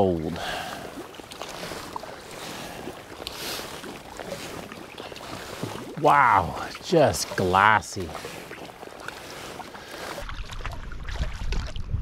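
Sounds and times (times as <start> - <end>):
water dripping: 0.0 - 11.8
kayak paddle swishing: 0.2 - 11.9.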